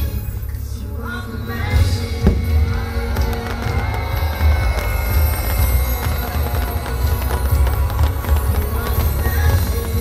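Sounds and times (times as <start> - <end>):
loud show music with deep bass: 0.0 - 10.0
fireworks crackling and popping: 1.5 - 10.0.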